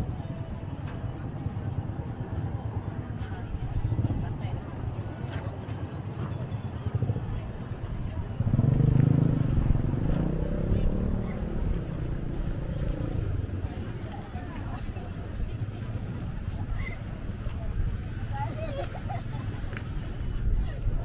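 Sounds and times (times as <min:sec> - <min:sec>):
people talking: 0:00.0 - 0:21.0
motorcycle engine: 0:06.9 - 0:13.6.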